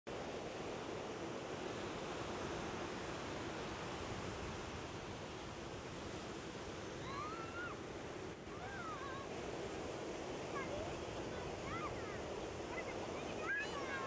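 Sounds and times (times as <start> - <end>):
ocean waves breaking on beach: 0.1 - 14.0.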